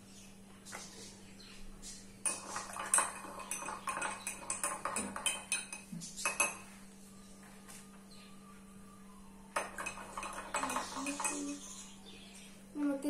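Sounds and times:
spoon clinking in glass: 2.2 - 6.6, 9.6 - 11.8.

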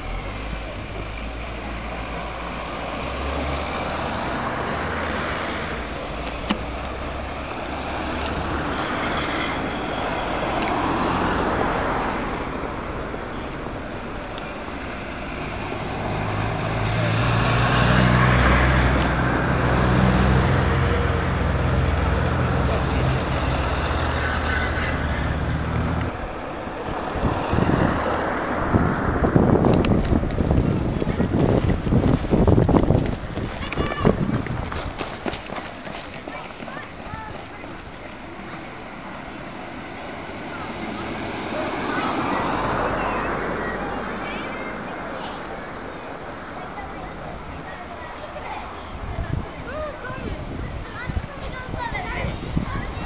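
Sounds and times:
traffic engine rumble: 0.0 - 53.0.

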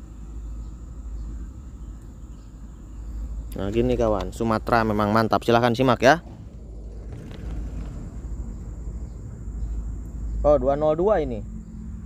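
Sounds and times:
distant diesel locomotive rumble: 0.0 - 12.0.

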